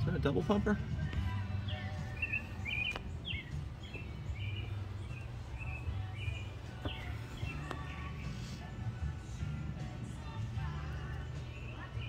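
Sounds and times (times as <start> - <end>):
low background rumble: 0.0 - 12.0
small bird chirping: 1.6 - 8.3.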